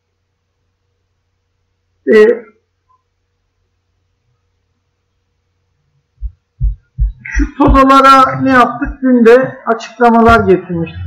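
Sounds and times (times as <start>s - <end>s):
faint low hum: 0.0s - 11.0s
dull low thumps: 6.2s - 9.1s, 10.1s - 11.0s.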